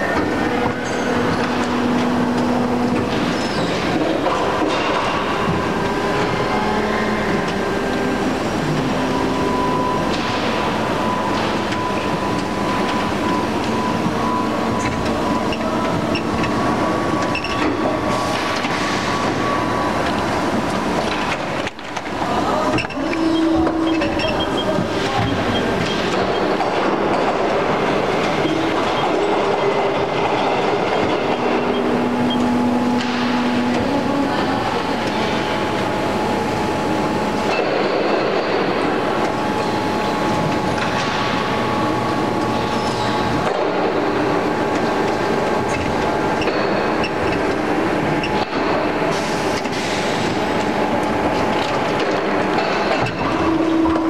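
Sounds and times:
injection moulding machine noise: 0.0s - 54.0s
machine whining tones: 0.0s - 54.0s.

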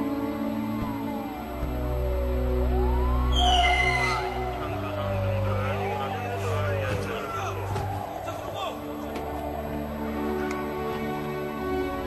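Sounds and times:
low music chords: 0.0s - 12.0s
police siren wailing: 0.0s - 12.0s.

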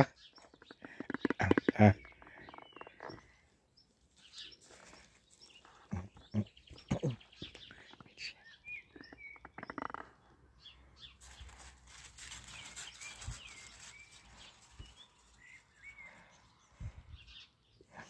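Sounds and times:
birds chirping: 0.0s - 18.0s
outdoor background noise: 0.0s - 18.0s.

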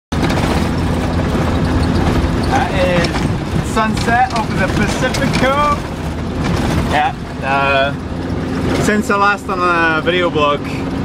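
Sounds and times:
car engine and road noise: 0.1s - 11.0s.

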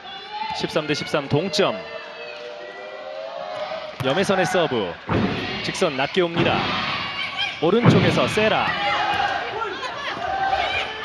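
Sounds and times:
crowd hum: 0.0s - 11.0s
commentary: 4.0s - 10.4s.

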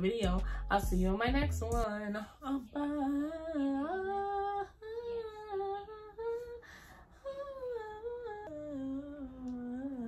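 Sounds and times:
woman humming a tune: 7.2s - 10.0s.

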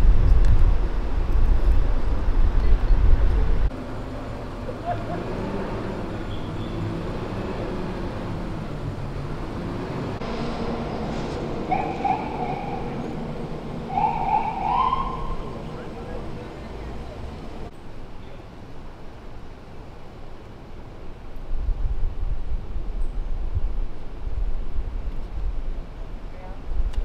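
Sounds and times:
wind buffeting microphone: 0.0s - 3.7s, 21.4s - 27.0s
city street traffic hum: 0.0s - 27.0s
faint voices: 14.6s - 18.5s.

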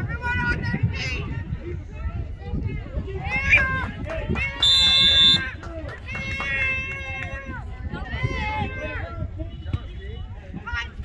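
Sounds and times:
referee's whistle: 4.6s - 5.5s.

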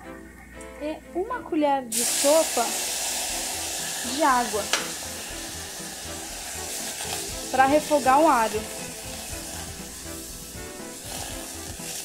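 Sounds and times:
background music: 0.0s - 12.0s
garlic sizzling in saucepan: 1.9s - 12.0s.

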